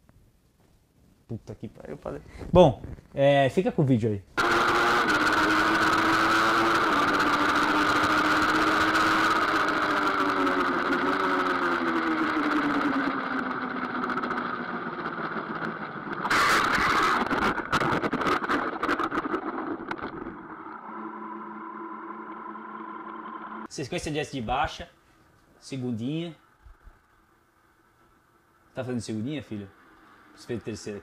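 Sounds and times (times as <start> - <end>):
motorcycle engine at speed: 4.4 - 23.7, 29.1 - 31.0.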